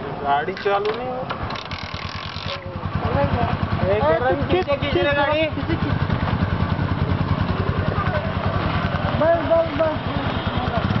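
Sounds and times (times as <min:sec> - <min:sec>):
motorcycle engine idling: 0:01.3 - 0:11.0.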